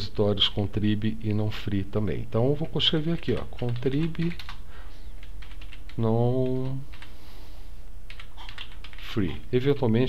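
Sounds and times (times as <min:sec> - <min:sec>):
keyboard keys clicking: 0:02.6 - 0:04.6, 0:05.2 - 0:07.1, 0:08.1 - 0:09.0.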